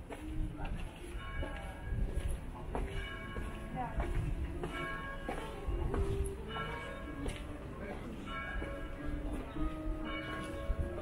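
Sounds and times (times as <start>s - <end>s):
church bells ringing: 0.9s - 11.0s.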